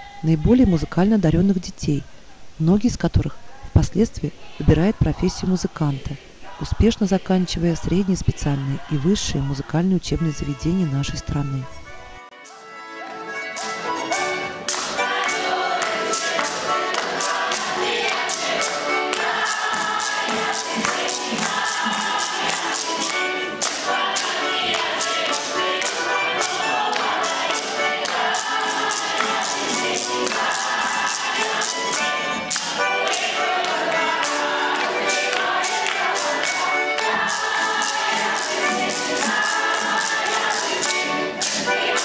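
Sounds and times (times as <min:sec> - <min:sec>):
children's choir singing: 0:04.2 - 0:42.0
sharp percussive beat: 0:13.6 - 0:42.0.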